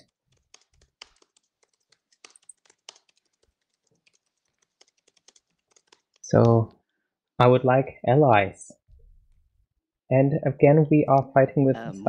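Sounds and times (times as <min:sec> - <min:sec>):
keyboard typing: 0:00.0 - 0:06.6.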